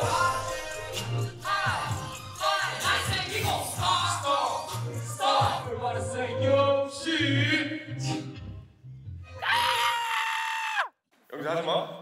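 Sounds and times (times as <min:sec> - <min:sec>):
person screaming high-pitched: 0:09.4 - 0:10.9.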